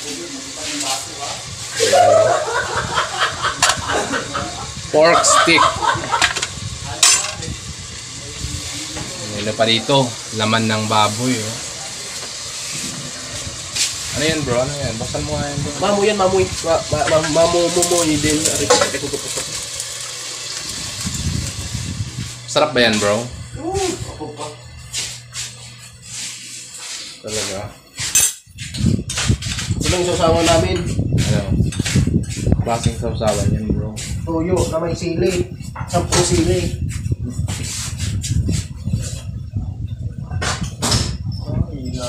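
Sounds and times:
people's voices: 0:00.0 - 0:19.6, 0:22.5 - 0:25.1
meat sizzling in hot oil: 0:00.0 - 0:27.6
steady hiss: 0:00.0 - 0:39.4.

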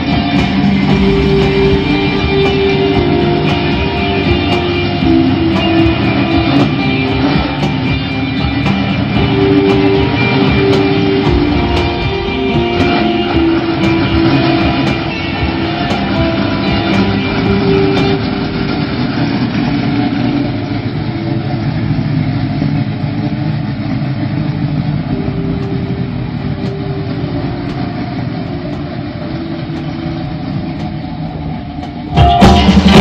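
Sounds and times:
car engine driving away: 0:00.0 - 0:33.0.

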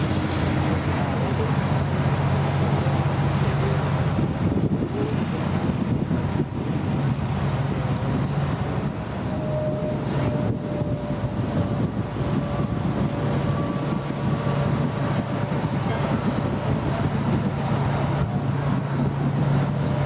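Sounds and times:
fire hose spraying water: 0:00.0 - 0:09.6
large engine droning: 0:00.0 - 0:20.0
wind on microphone: 0:00.0 - 0:20.0.

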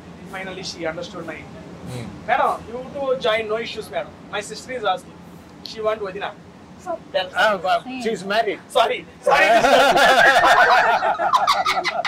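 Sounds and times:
hearty laughter: 0:09.3 - 0:12.0.

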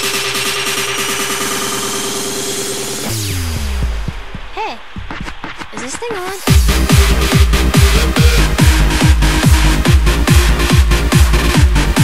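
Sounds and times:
rapid drum roll: 0:00.0 - 0:12.0
held synth tones: 0:06.7 - 0:09.0.

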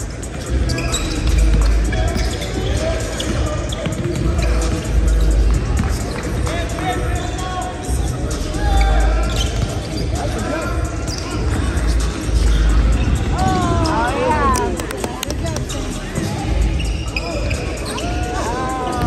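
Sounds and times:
indistinct voices: 0:00.0 - 0:19.0
music playing: 0:00.0 - 0:19.0.

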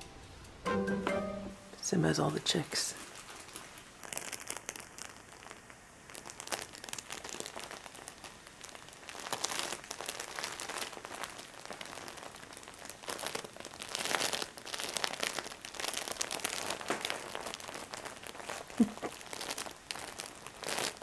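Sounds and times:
crinkly material rustling under paws: 0:03.0 - 0:05.1, 0:09.0 - 0:21.0.

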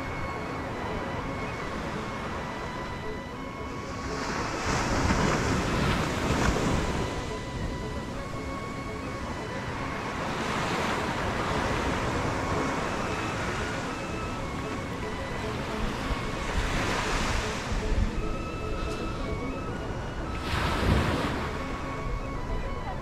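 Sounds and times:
wind on microphone: 0:00.0 - 0:23.0
waves breaking on sandy beach: 0:03.8 - 0:18.3.

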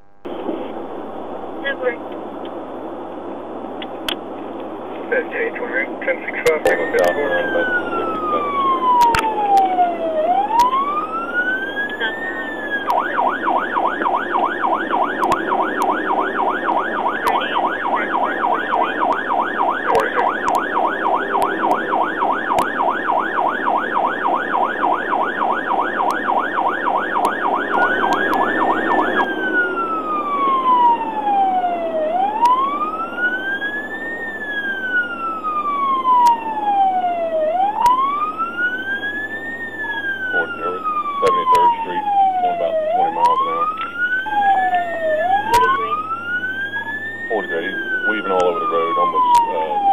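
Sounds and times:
road noise: 0:00.0 - 0:49.9
police siren wailing and yelping: 0:06.0 - 0:49.9.

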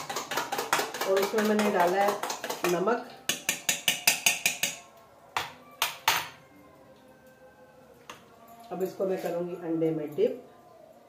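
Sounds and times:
spoon clinking on metal bowl: 0:00.0 - 0:06.4.

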